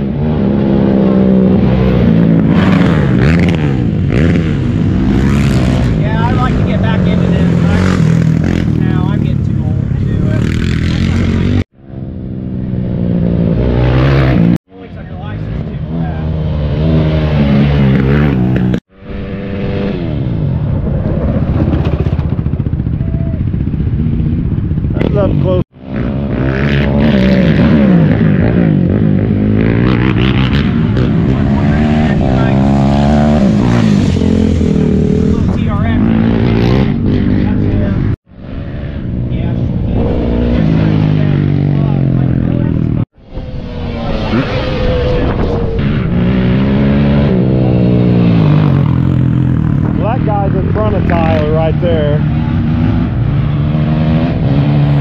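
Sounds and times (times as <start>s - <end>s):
racing atv engines revving: 0.0s - 55.0s.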